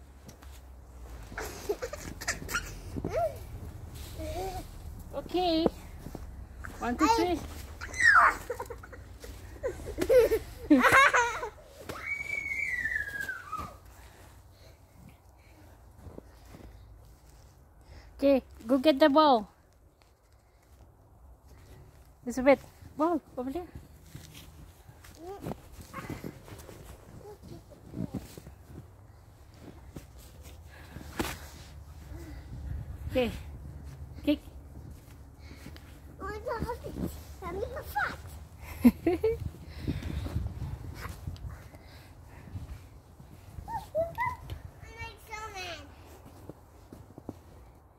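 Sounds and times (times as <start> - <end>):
footsteps in deep snow: 0.0 - 10.6, 22.6 - 44.1
girl squealing: 7.8 - 8.7, 11.9 - 13.8.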